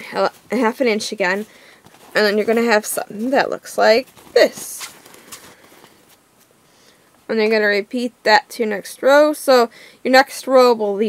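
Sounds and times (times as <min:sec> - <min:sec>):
fabric rustling: 0:00.0 - 0:06.6.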